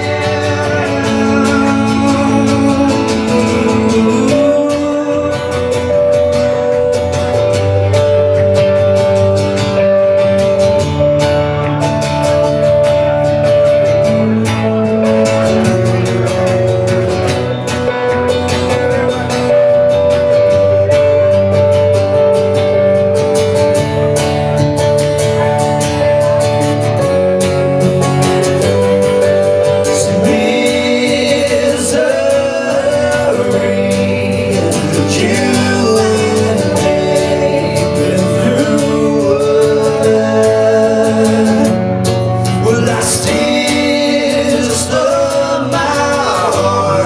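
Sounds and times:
acoustic guitar chords: 0:00.0 - 0:47.0.

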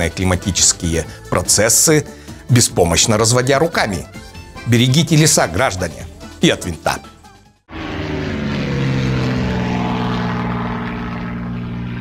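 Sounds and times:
propeller aircraft engine droning: 0:07.7 - 0:12.0.

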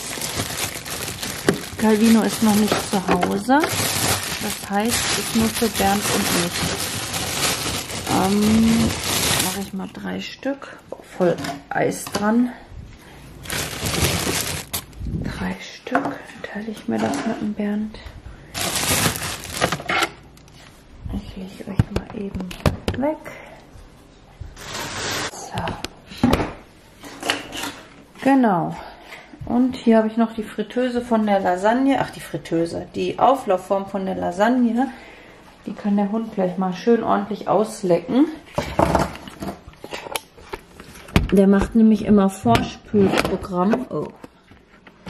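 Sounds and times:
plastic bag crinkling: 0:00.0 - 0:10.0, 0:13.4 - 0:15.1, 0:18.5 - 0:20.6.

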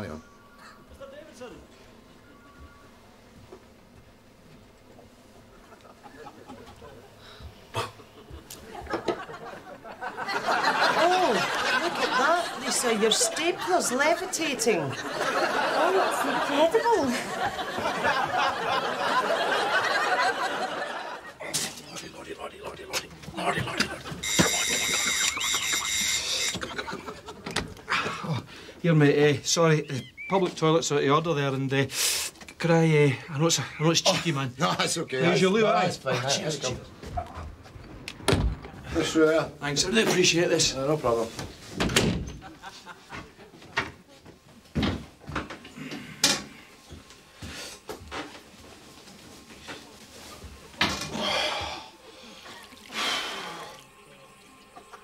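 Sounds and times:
electric doorbell ringing: 0:24.2 - 0:26.6.

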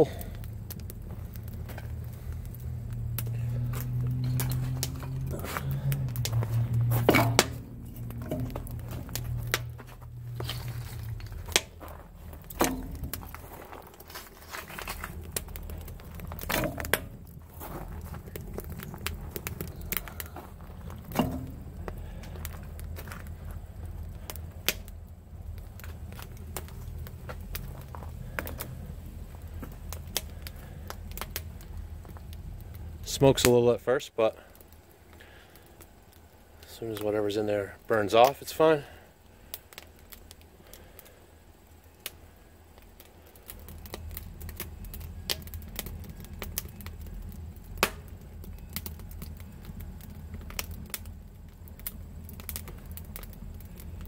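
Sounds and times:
wood knocking onto fire: 0:00.0 - 0:33.6, 0:42.8 - 0:54.0
low steady hum: 0:00.0 - 0:54.0
wood fire crackling and popping: 0:00.0 - 0:54.0.

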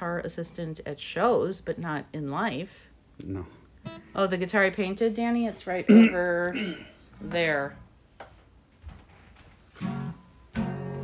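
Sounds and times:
guitar chord strummed: 0:09.8 - 0:11.0.

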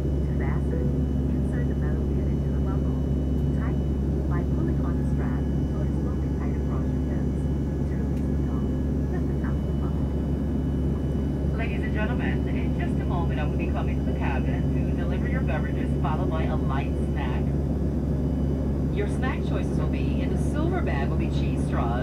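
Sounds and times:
indistinct voices talking: 0:00.0 - 0:22.0
jet engine cabin drone: 0:00.0 - 0:22.0
low hum: 0:00.0 - 0:22.0.

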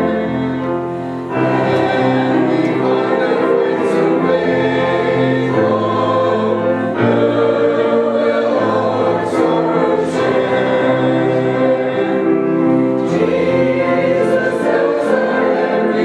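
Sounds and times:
congregation singing a hymn: 0:00.0 - 0:16.0.

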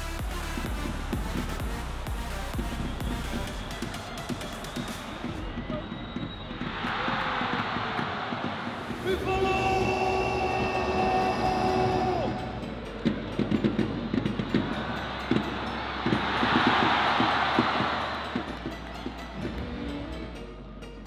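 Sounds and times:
crowd cheering: 0:00.0 - 0:20.2
announcer shouting over loudspeakers: 0:09.0 - 0:12.8.

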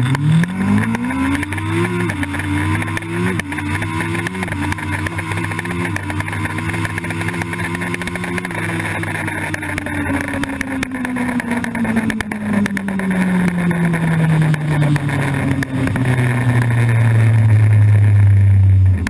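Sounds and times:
motorcycle engine revs falling: 0:00.0 - 0:19.0.

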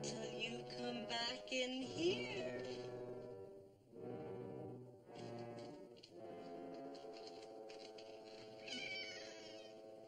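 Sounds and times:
orchestral music: 0:00.0 - 0:10.0
cat-like meow: 0:08.6 - 0:09.7.

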